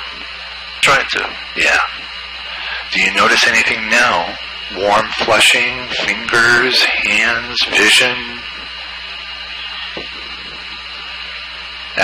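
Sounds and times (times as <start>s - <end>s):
intercom line hiss with hum: 0.0s - 12.0s.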